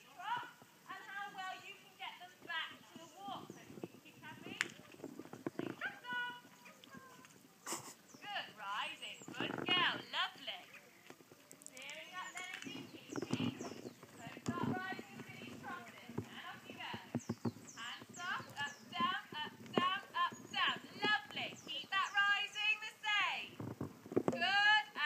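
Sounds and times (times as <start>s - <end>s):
pony hoofbeats: 0.0s - 7.4s, 8.2s - 24.8s
voices talking: 0.0s - 23.7s.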